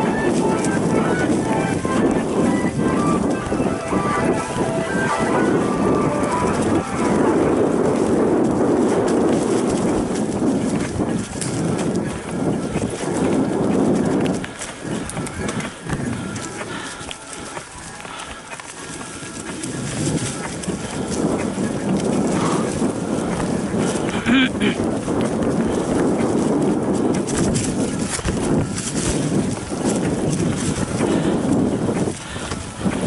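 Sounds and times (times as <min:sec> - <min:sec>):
bike clattering and rattling: 0:00.0 - 0:33.0
tyres crunching through leaves: 0:00.0 - 0:33.0.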